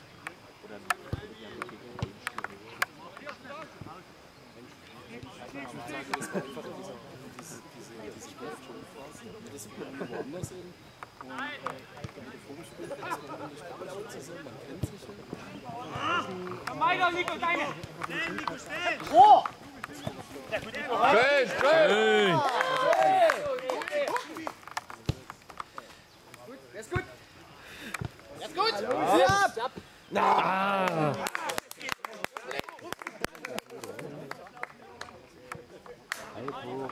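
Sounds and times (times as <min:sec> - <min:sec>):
players calling out: 0:04.6 - 0:31.6
players shouting: 0:15.4 - 0:24.7, 0:28.4 - 0:31.6.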